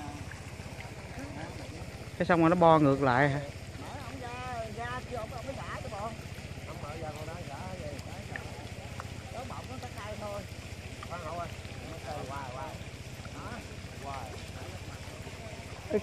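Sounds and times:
distant voices calling: 0.0s - 16.0s
motor running steadily: 0.0s - 16.0s.

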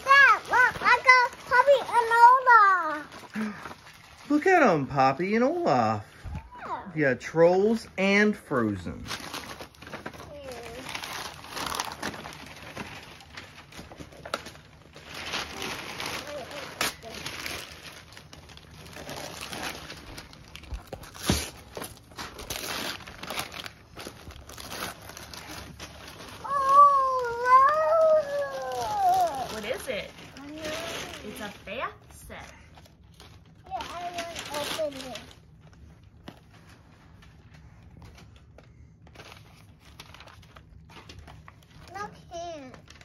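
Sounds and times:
paper crinkling and rustling: 0.0s - 5.6s, 7.6s - 43.0s.

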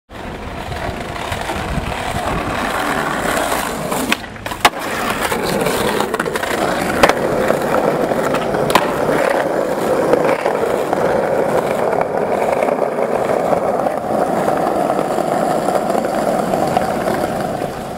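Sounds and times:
skateboard clacking on ground: 0.1s - 17.9s
skateboard wheels rolling on stone: 0.1s - 17.9s.

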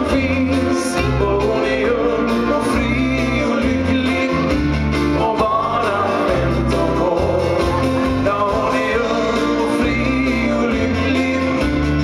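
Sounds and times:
live band playing: 0.0s - 12.0s
man singing: 0.0s - 12.0s.

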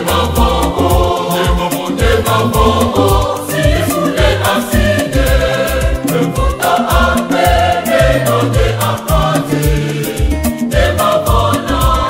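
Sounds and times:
bass and drums: 0.0s - 12.0s
choir singing gospel song: 0.0s - 12.0s.

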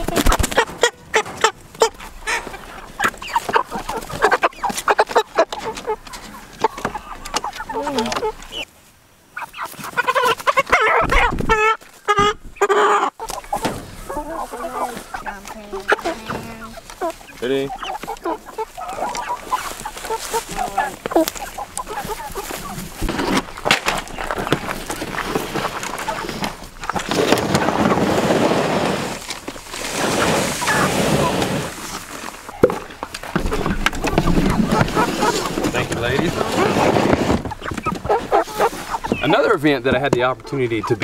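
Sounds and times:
chickens clucking and squawking: 0.0s - 41.0s.

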